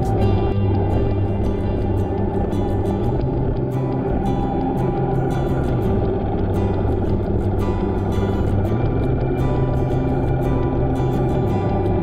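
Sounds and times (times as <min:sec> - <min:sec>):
background music: 0:00.0 - 0:12.0
low rumble: 0:00.0 - 0:12.0.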